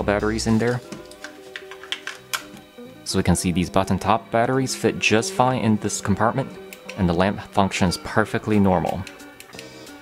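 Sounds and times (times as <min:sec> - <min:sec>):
soft background music: 0:00.0 - 0:10.0
battery clicking into holder: 0:00.9 - 0:02.6.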